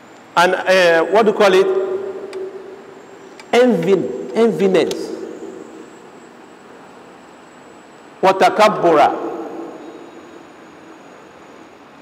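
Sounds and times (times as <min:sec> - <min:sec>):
thin high whine: 0:00.0 - 0:12.0
man speaking in reverberant room: 0:00.3 - 0:07.1, 0:08.1 - 0:11.0.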